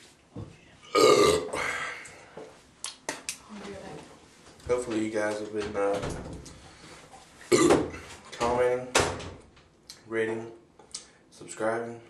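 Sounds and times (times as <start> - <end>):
man burping: 0.9 - 2.0, 7.5 - 8.0.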